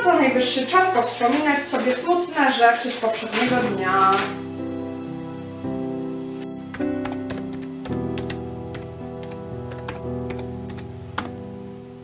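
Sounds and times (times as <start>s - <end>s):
slow instrumental music: 0.0s - 12.0s
keyboard typing: 6.7s - 11.4s.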